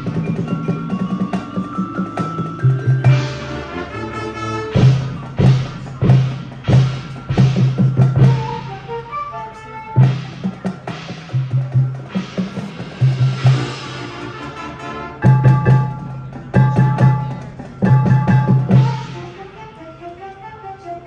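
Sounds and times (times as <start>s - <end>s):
marching band ensemble hits: 0.0s - 20.3s
mallet notes: 0.0s - 20.4s.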